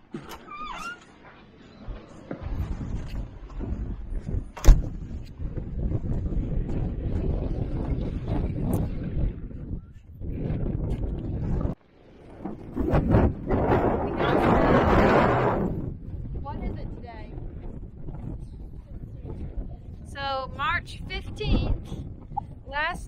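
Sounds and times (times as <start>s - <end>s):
wind buffeting microphone: 0.0s - 23.0s
door shutting bang: 4.6s - 5.0s.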